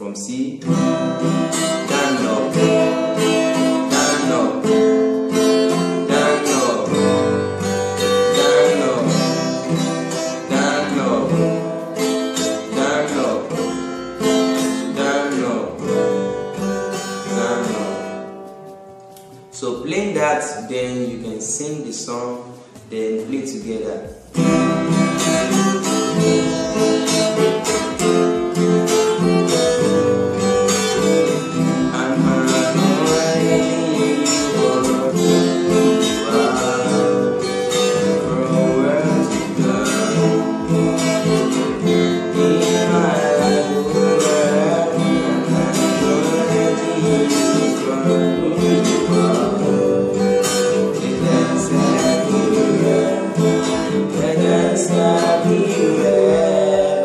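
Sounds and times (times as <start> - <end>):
acoustic guitar strumming: 0.0 - 57.0
person singing: 1.2 - 18.7, 19.6 - 57.0.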